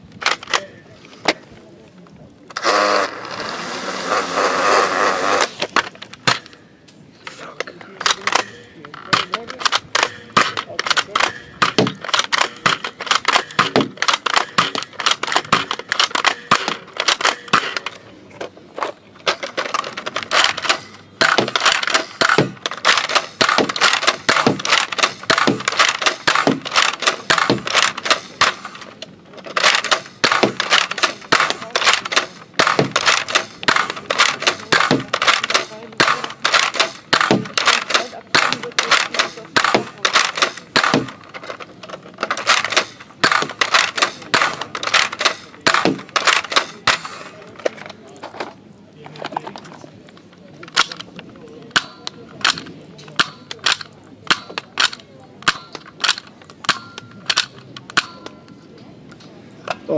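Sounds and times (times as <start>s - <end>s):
toy noise burst: 2.6s - 5.7s
rapid irregular clicks and crackles: 4.1s - 59.9s.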